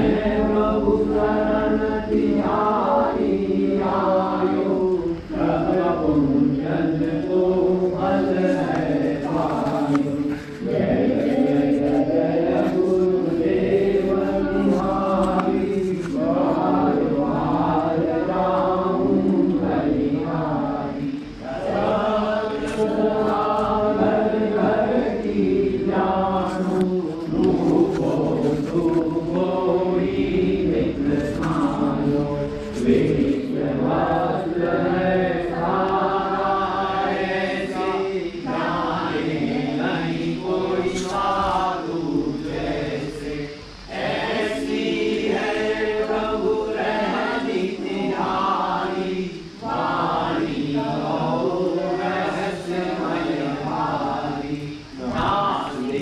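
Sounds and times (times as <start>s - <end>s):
voices chanting a devotional mantra: 0.0s - 56.0s.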